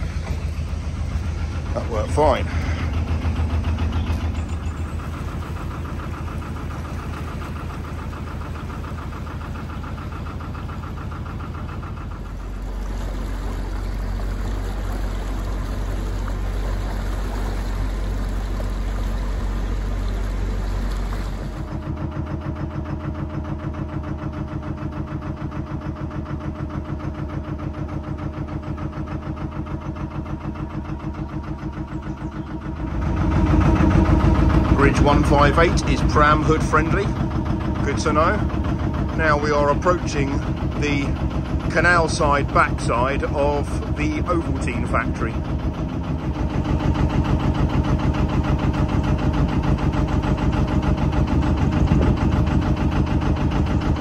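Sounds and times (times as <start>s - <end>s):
diesel engine chugging: 0.0s - 54.0s.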